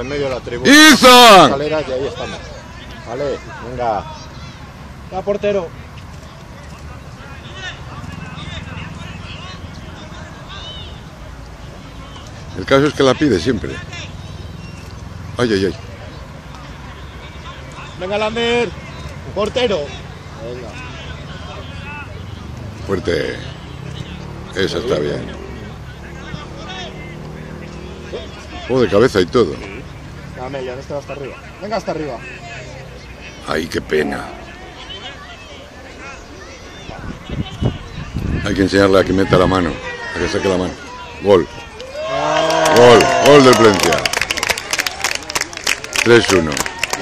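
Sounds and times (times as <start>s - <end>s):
distant voices calling out: 0.0s - 47.0s.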